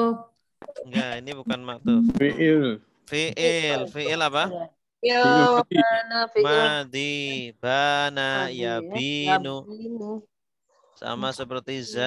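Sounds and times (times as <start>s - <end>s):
person calling out: 3.4s - 4.2s, 5.2s - 7.5s, 8.1s - 9.6s.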